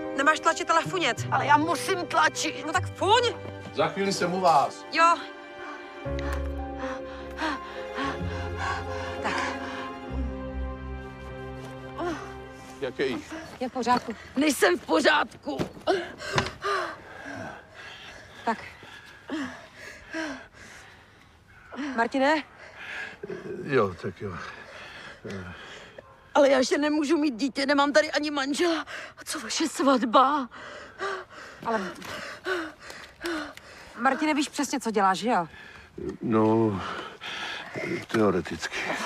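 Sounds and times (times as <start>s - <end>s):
woman gasping and breathing hard: 5.7s - 10.2s.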